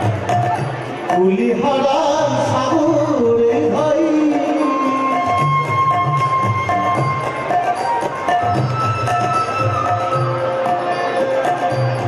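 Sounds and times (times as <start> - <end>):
hand percussion: 0.0 - 12.0.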